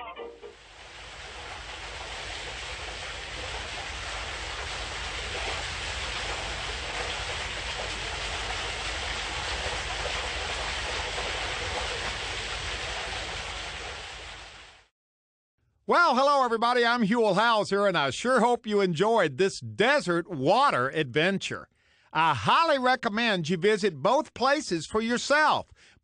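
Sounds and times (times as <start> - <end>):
steady outdoor rushing noise: 0.6 - 13.8
low rumble: 0.6 - 14.4.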